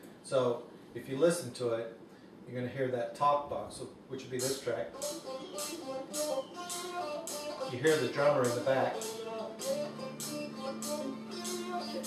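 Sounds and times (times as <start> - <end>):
held bass notes: 4.4 - 12.0
talk box guitar notes: 4.4 - 12.0.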